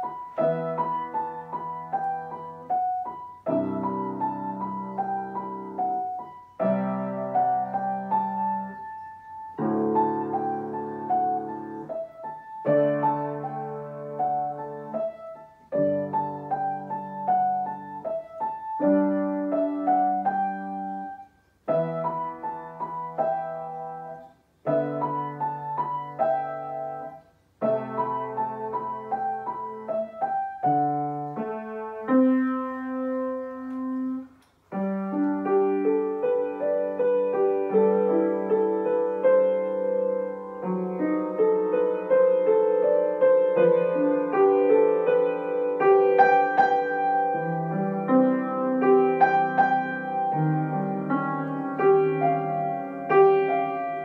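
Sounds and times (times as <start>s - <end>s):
slow classical piano piece: 0.0s - 54.0s.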